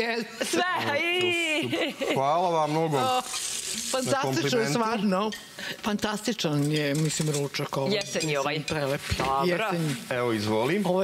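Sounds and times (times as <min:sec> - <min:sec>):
food sizzling: 0:02.2 - 0:11.0.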